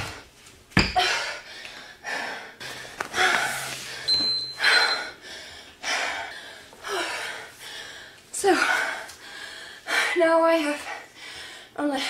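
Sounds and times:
woman breathing hard: 0.9 - 12.0.

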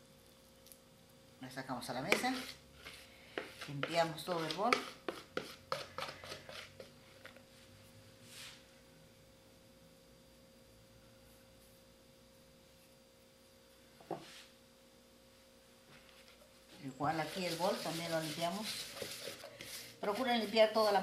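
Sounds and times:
faint steady hum: 0.0 - 21.0
dough scraped from plastic bowl: 2.1 - 7.3, 17.1 - 21.0
soft brushing: 2.1 - 8.6, 14.1 - 14.6, 15.9 - 21.0.

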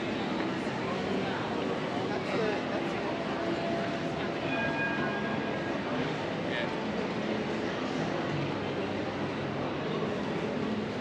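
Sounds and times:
city street noise: 0.0 - 11.0.

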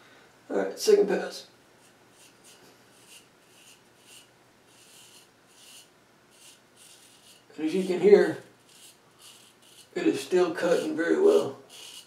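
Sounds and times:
razor scraping stubble: 1.8 - 12.0.

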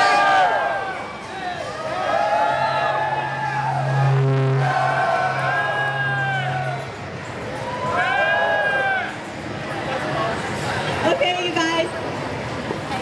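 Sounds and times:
crowd cheering and whooping: 0.0 - 9.3.

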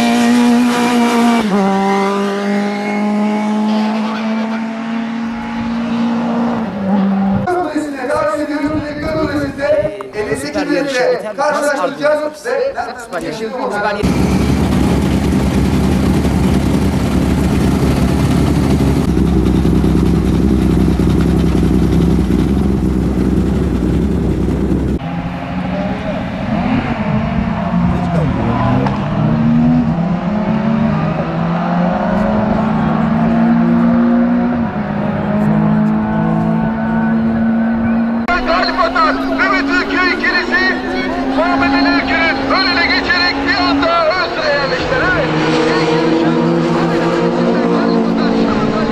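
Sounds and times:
race car engines at high revs: 0.0 - 7.5, 14.0 - 48.9.

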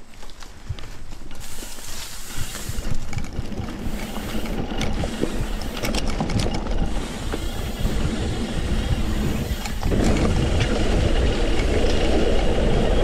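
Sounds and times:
bike rattling: 0.0 - 13.0
tyres on loose dirt: 0.0 - 13.0
wind on microphone: 2.3 - 13.0.

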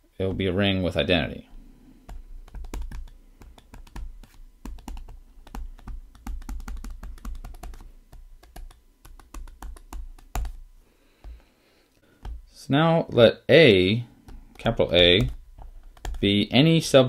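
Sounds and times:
stylus clicking on tablet screen: 2.0 - 10.6, 14.3 - 16.5.

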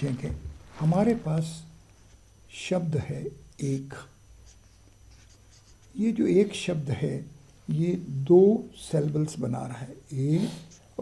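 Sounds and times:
marker scratching on paper: 4.4 - 6.0.

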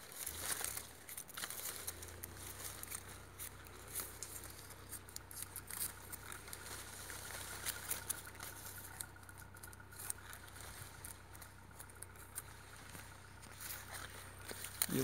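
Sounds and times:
faint rustling of leaves: 0.0 - 15.0.

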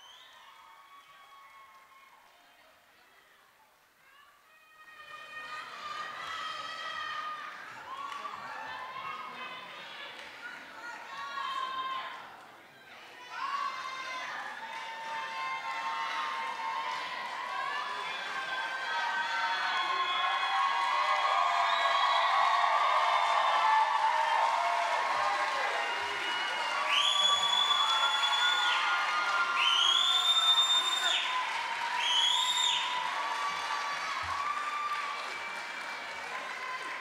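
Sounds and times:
scattered applause: 0.0 - 37.0
audience cheering and calling out: 12.9 - 37.0.

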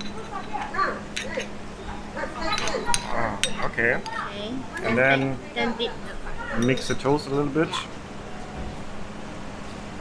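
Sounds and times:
metal spoon clinking on ceramic bowl: 2.5 - 3.7, 6.6 - 7.0.

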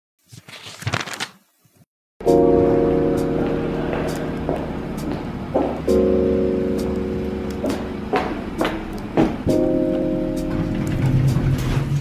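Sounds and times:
background music held chords: 2.2 - 12.0.

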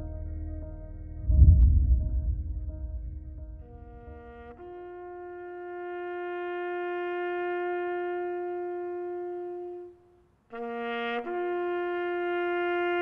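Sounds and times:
brass instrument holding long notes: 3.5 - 13.0.

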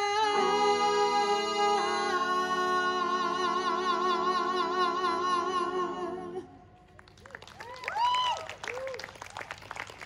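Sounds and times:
women singing a cappella chord: 0.0 - 6.8.

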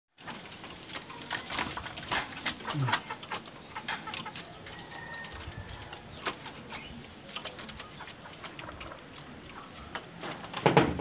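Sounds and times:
birds pecking and scratching gravel: 0.2 - 11.0.

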